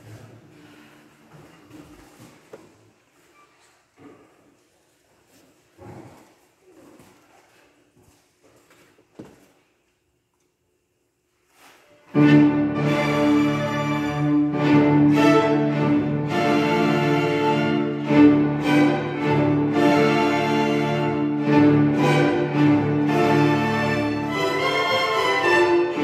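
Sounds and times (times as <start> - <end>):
faint rustles and creaks: 0.0 - 10.0.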